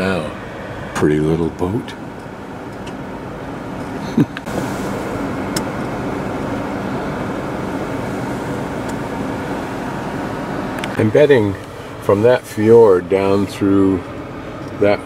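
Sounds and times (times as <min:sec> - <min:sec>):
car road and engine noise: 0:00.0 - 0:15.0.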